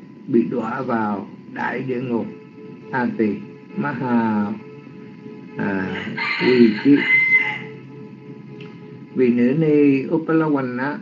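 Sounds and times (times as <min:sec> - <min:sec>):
soft background music: 0:00.0 - 0:11.0
person talking: 0:00.3 - 0:02.3, 0:02.9 - 0:04.6, 0:05.6 - 0:07.2, 0:09.2 - 0:11.0.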